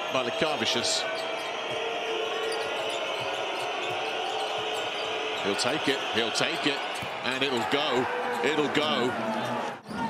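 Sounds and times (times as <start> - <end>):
arena crowd din: 0.0 - 10.0.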